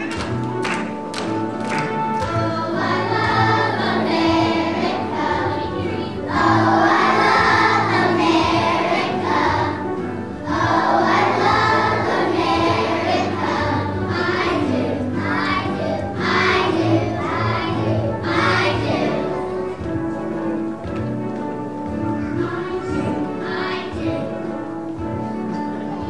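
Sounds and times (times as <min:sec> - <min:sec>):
children's choir singing: 0:00.0 - 0:20.8, 0:21.6 - 0:26.0
instrumental accompaniment: 0:00.0 - 0:26.0.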